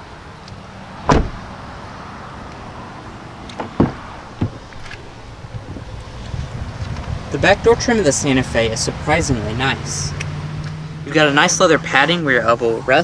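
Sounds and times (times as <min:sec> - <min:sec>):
steady background noise: 0:00.0 - 0:13.0
car door clunks: 0:01.0 - 0:01.5, 0:03.5 - 0:05.9.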